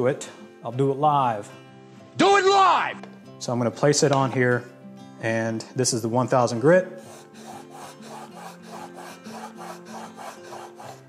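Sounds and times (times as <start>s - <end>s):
chisel rasping on whetstone: 7.0s - 11.0s.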